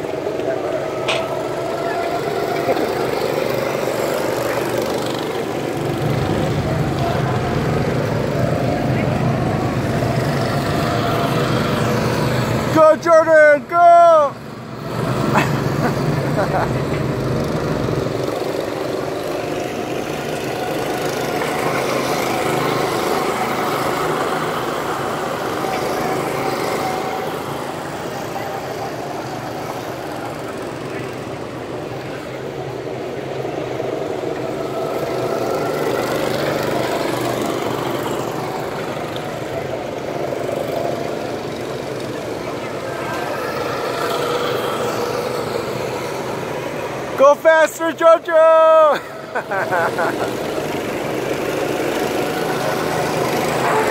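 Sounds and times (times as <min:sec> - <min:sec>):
go-kart engines passing: 0:00.0 - 0:53.9.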